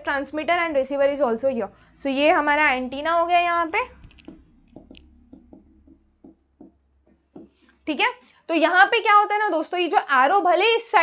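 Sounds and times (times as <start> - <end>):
stylus tapping and scratching screen: 2.2 - 7.8.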